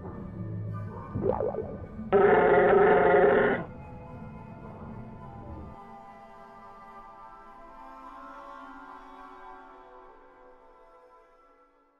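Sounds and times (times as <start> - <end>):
soft ambient music: 0.0 - 11.9
creature howling cry: 2.2 - 3.7.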